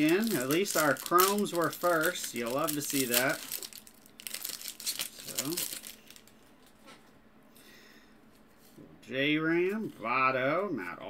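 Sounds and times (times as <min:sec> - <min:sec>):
shuffling cards by hand: 0:00.0 - 0:06.9.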